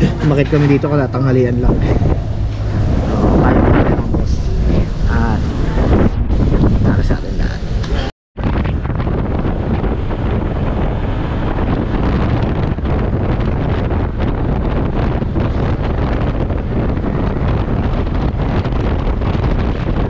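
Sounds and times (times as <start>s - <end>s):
motorcycle running and road noise: 0.0s - 20.0s
wind buffeting microphone: 0.0s - 20.0s.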